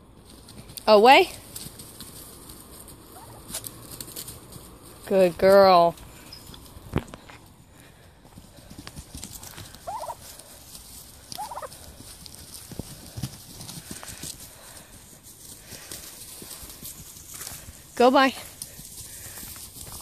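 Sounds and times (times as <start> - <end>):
scuffling and rustling on straw: 0.2 - 7.5, 8.4 - 20.0
turkeys calling: 1.6 - 4.7, 8.5 - 14.7.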